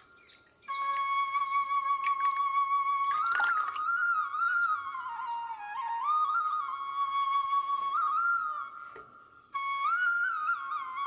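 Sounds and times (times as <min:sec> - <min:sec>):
flute melody: 0:00.0 - 0:11.0
water splash: 0:00.4 - 0:03.9.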